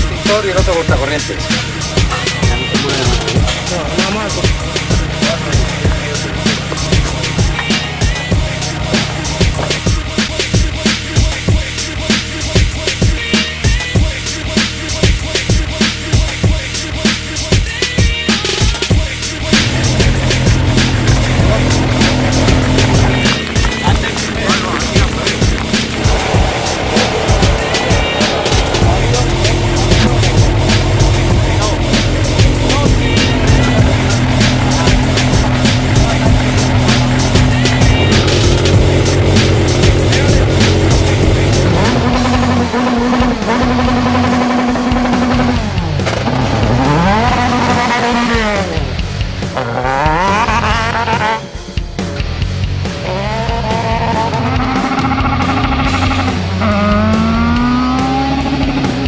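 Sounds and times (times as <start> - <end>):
racing car engine accelerating: 0.0 - 12.9, 19.0 - 59.0
background music: 0.0 - 59.0.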